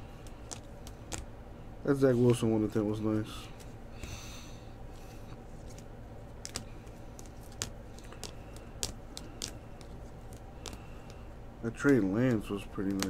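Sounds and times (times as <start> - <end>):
low steady hum: 0.0 - 13.0
plastic cards clicking together: 0.1 - 1.3, 5.6 - 13.0.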